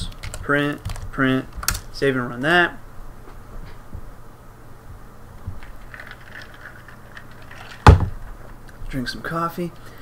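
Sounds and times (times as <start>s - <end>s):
sharp loud thump: 7.9s - 8.2s.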